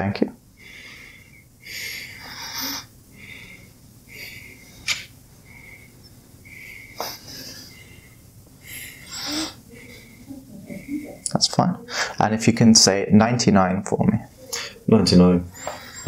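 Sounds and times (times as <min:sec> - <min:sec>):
man breathing deeply: 0:00.6 - 0:11.2, 0:11.8 - 0:12.2.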